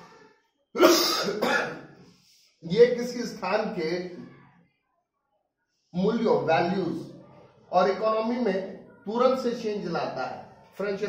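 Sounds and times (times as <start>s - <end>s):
man coughing: 0.8s - 1.9s.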